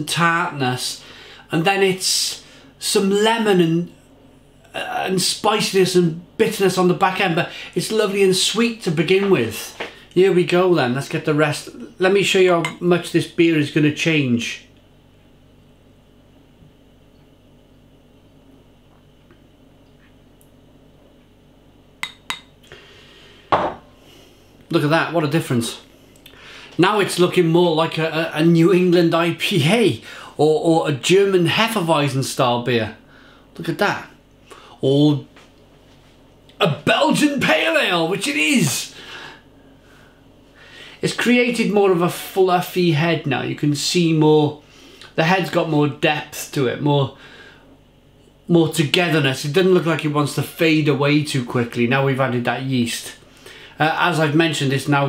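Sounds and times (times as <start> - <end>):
faint room hiss: 0.0 - 55.0
soft breath: 22.7 - 24.6.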